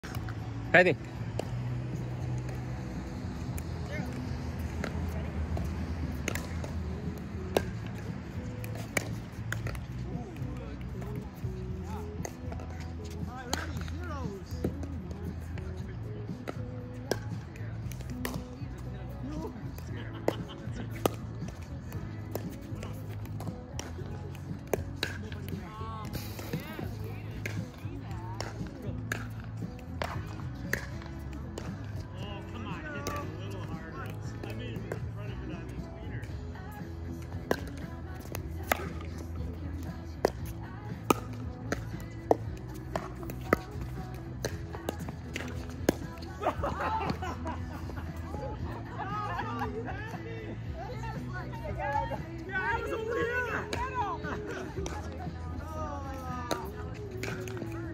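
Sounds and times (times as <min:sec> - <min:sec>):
background music: 0:00.0 - 0:57.9.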